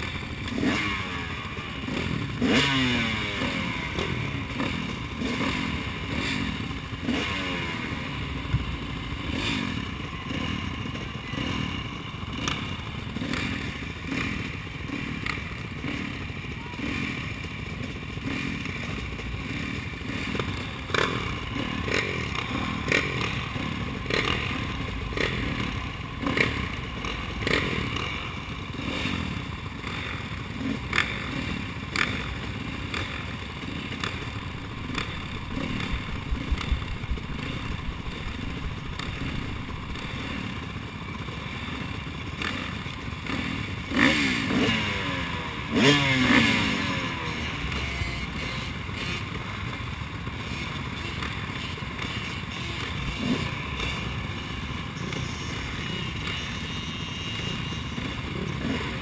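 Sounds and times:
dirt bike engines idling: 0.0 - 59.0.

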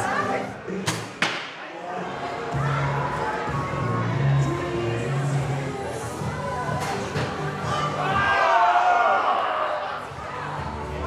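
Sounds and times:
voices: 1.7 - 8.7.

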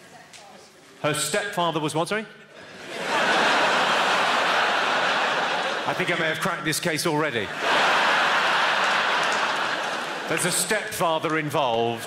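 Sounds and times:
audience laughing and applauding: 2.8 - 6.2, 7.5 - 11.1.

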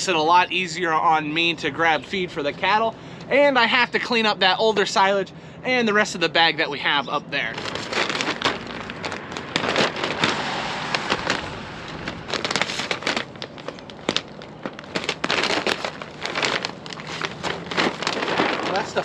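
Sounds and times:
plastic film crackling: 7.4 - 19.0.

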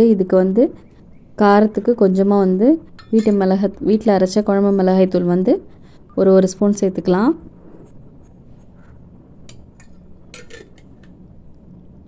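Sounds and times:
woman speaking: 0.0 - 0.8, 1.4 - 7.5
faint background noise: 0.0 - 12.0.

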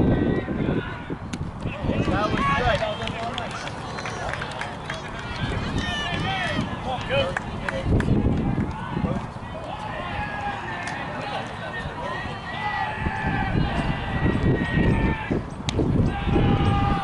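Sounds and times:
crowd calling out and chattering: 0.0 - 17.0.

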